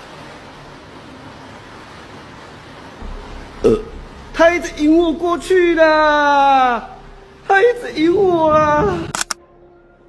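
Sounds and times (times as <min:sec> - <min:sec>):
steady background hiss: 0:00.0 - 0:10.0
short falling-pitch sound: 0:03.0 - 0:06.2
person calling out: 0:05.1 - 0:09.1.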